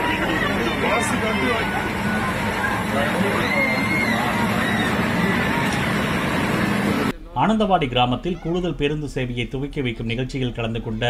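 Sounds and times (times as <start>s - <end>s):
diesel bus engine running: 0.0s - 7.2s
faint voices: 0.0s - 9.0s.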